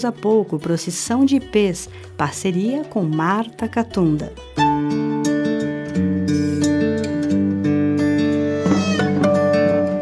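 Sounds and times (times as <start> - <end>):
acoustic guitar chords: 3.6 - 10.0.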